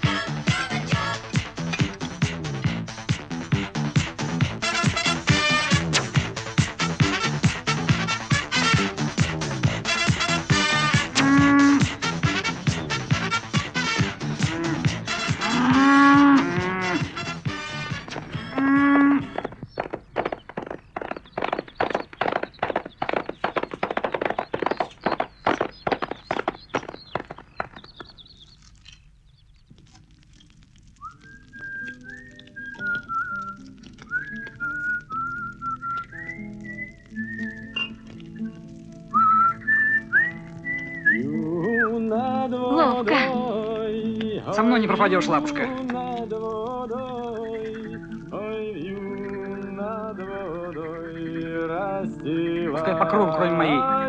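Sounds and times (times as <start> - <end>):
cows mooing: 9.9 - 12.6, 13.2 - 19.5
high whistle-like melody: 31.0 - 42.0.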